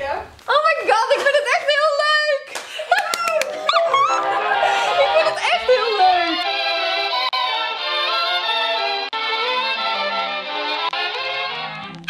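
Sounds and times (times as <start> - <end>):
hand claps: 2.5 - 3.9
woman squealing excitedly: 2.9 - 6.4
background music: 3.2 - 12.0.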